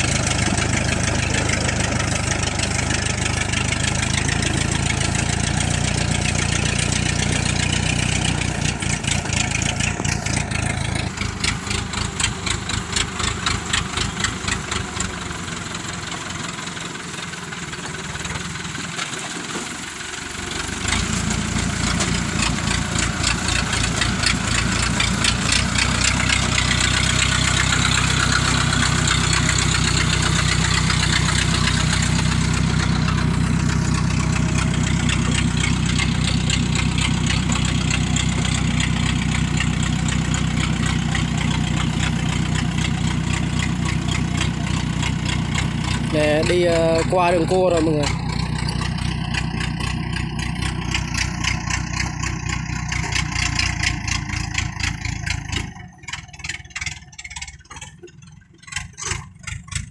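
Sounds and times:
small engine chugging: 0.0 - 59.9.

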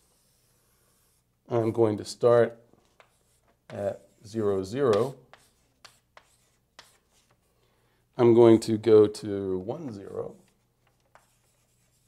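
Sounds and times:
faint writing strokes: 0.0 - 1.8, 2.8 - 7.6, 9.6 - 12.0.

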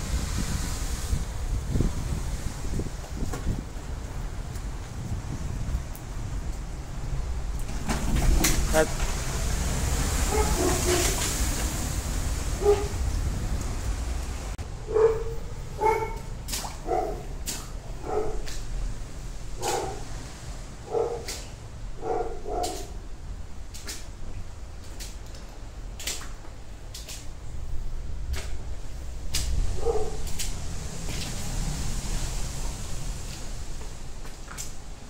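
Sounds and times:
wind on microphone: 0.0 - 23.5, 27.4 - 34.2
dog barking: 10.3 - 11.1, 12.6 - 13.0, 14.9 - 17.3, 18.0 - 18.5, 19.6 - 20.1, 20.8 - 21.4, 22.0 - 23.0, 29.8 - 30.2.

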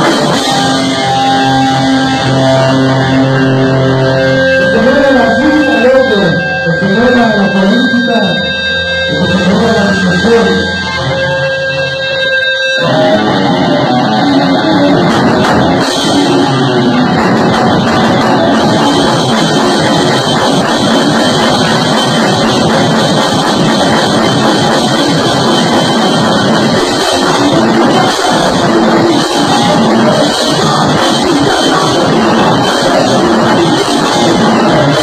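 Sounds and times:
held electric guitar tone: 0.0 - 35.0
live rock band playing: 0.0 - 35.0.

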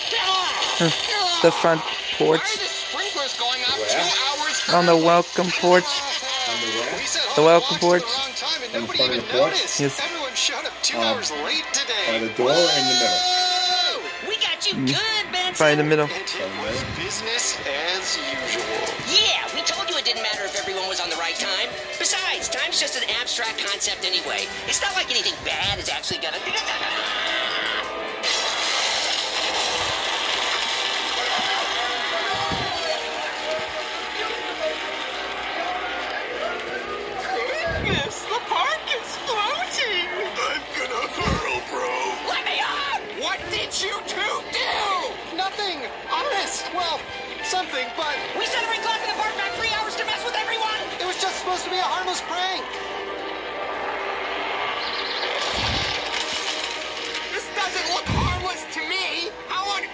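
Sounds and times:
cartoon hissing and crackling: 0.0 - 7.2, 27.0 - 34.4, 54.7 - 58.6.

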